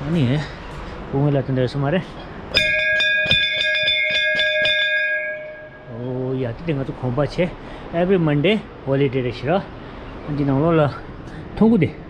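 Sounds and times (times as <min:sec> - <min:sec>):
large metal bell ringing: 0:02.5 - 0:06.4.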